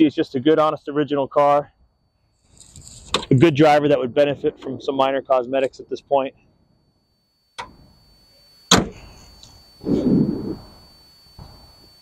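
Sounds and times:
car door shutting: 0:08.7 - 0:09.1.

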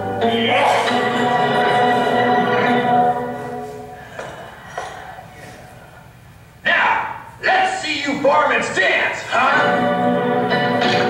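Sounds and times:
held music chord: 0:00.0 - 0:04.0.

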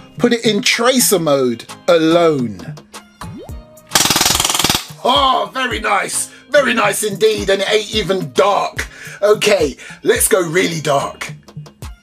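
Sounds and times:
airsoft pistol full-auto burst: 0:03.9 - 0:04.9.

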